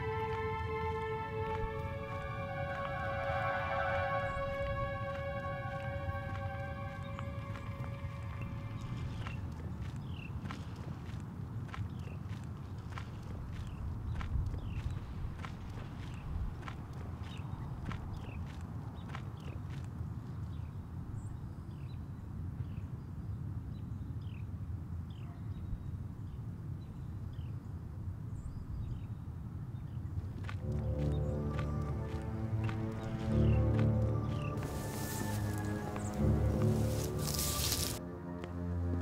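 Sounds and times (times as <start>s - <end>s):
sustained music chord: 0.0s - 9.6s, 30.6s - 39.0s
footsteps on gravel: 0.0s - 19.8s, 30.4s - 39.0s.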